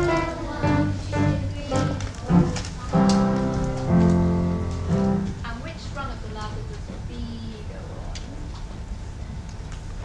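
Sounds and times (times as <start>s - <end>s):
acoustic guitars and piano playing: 0.0s - 5.8s.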